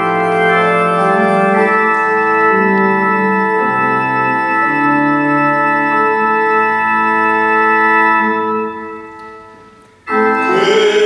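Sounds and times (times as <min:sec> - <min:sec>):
church organ chord: 0:00.0 - 0:11.0.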